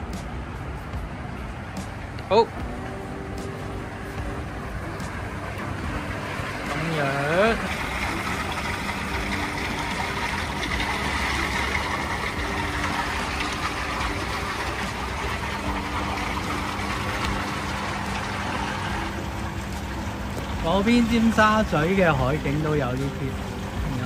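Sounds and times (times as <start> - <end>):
churning water from jets: 0.0 - 24.0
pump humming: 0.0 - 24.0.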